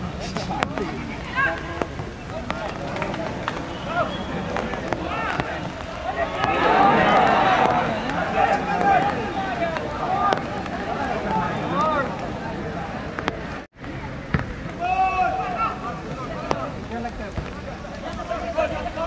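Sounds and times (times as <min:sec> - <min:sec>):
people shouting on a football pitch: 0:00.6 - 0:19.0.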